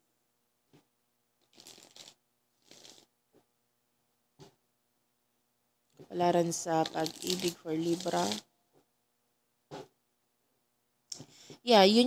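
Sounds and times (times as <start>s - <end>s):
cards being shuffled: 1.5s - 3.0s, 6.8s - 8.4s.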